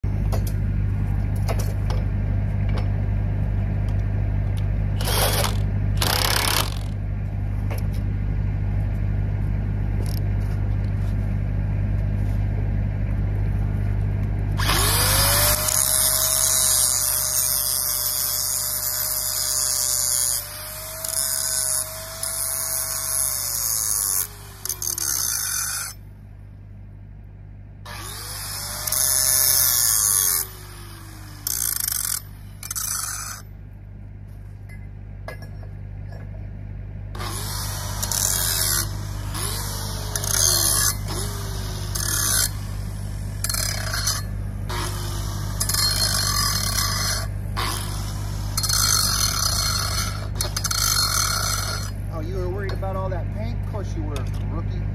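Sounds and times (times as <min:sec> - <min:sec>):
low hum: 0:00.0 - 0:54.9
angle grinder grinding metal: 0:05.0 - 0:07.0, 0:14.6 - 0:26.0, 0:27.9 - 0:33.5, 0:37.2 - 0:54.4.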